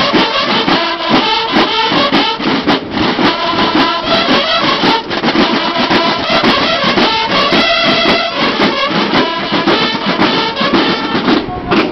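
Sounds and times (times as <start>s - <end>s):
bugles playing: 0.0s - 11.9s
marching snare and bass drums: 0.0s - 11.9s.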